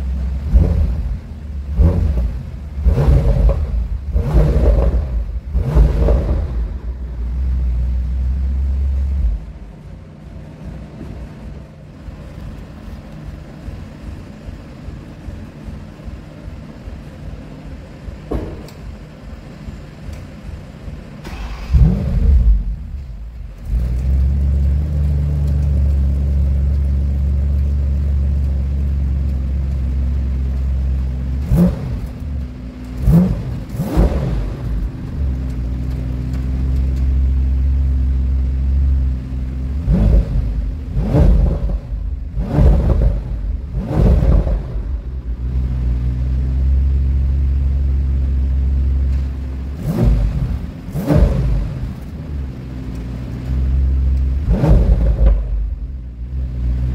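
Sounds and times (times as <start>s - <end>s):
engine revving in throttle blips: 0.0s - 9.7s, 21.2s - 56.9s
car engine starting and idling: 0.0s - 56.9s.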